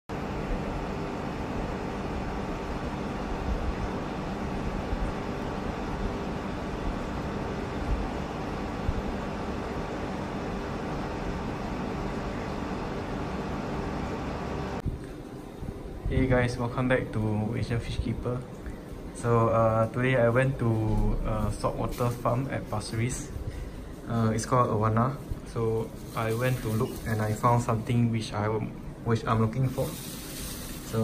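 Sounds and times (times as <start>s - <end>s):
aquarium pumps humming: 0.1s - 31.0s
circulating water: 29.7s - 31.0s.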